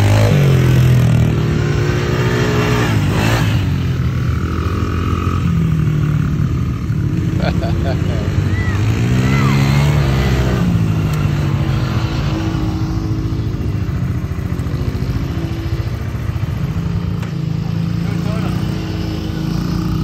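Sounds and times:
atv engine running: 0.0 - 20.0
mini dirt bike engine: 0.0 - 20.0.

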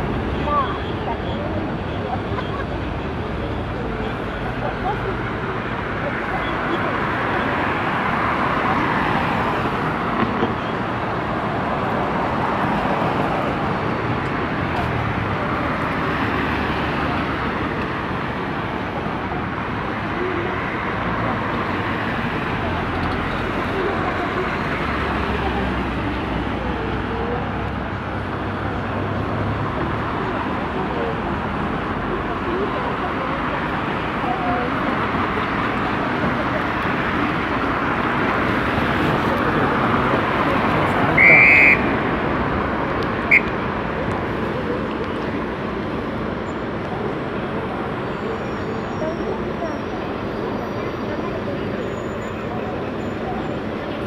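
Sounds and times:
indistinct chatter of people: 0.0 - 54.0
roadside traffic noise: 0.0 - 54.0.

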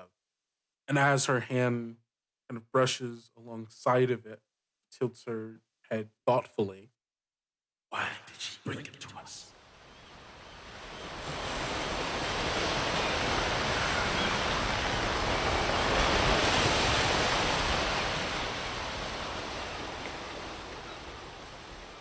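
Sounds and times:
ocean waves washing: 9.1 - 22.0.

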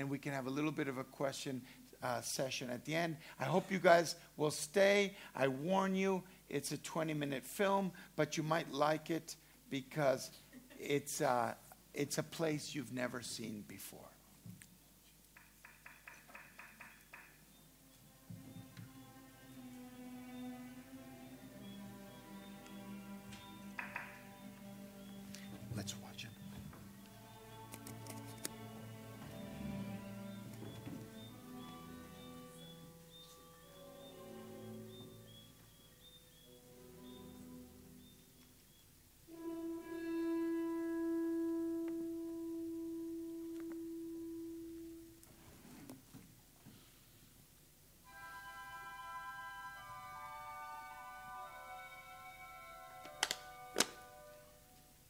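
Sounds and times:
film soundtrack music: 17.0 - 45.3, 48.0 - 54.8.

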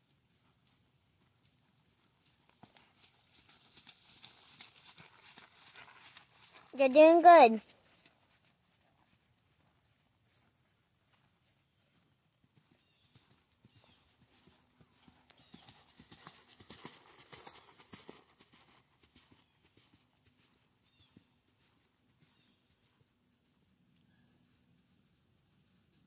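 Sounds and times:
horse hoofbeats trotting on sand: 0.0 - 26.0.

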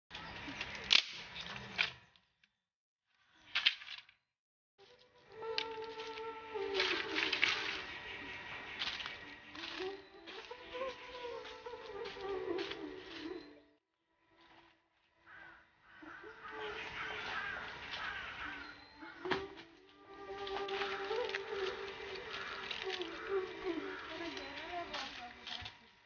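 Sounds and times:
bamboo sticks rustling and knocking: 0.1 - 2.4, 3.1 - 4.2, 4.8 - 13.5, 17.2 - 26.0
sticks dropped onto dry leaves: 0.2 - 2.1, 3.5 - 4.2, 4.8 - 13.5, 17.2 - 25.9
wavering buzzing drone: 4.8 - 26.0.

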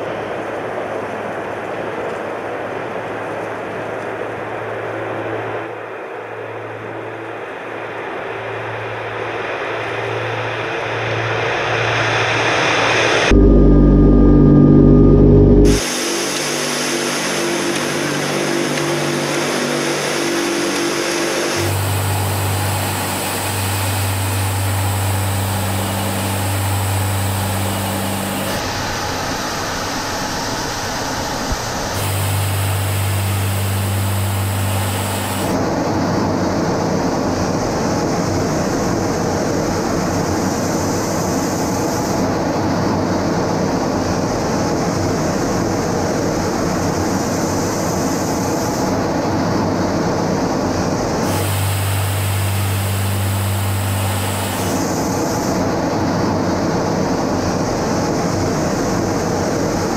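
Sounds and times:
propeller aircraft engines droning: 0.0 - 15.0, 15.6 - 59.9.

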